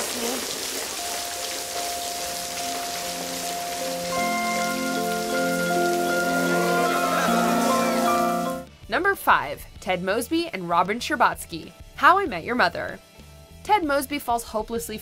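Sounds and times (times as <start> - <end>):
heavy rain pouring: 0.0 - 8.6
soft music with held notes: 1.0 - 8.8.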